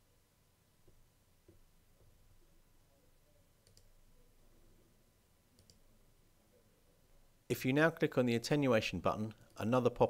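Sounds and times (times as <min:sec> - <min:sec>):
faint computer mouse clicks: 0:03.6 - 0:04.0, 0:05.6 - 0:05.8.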